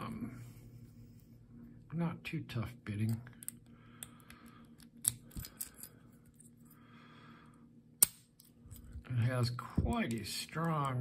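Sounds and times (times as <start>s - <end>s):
padlock shackle snapping open: 4.8s - 5.9s.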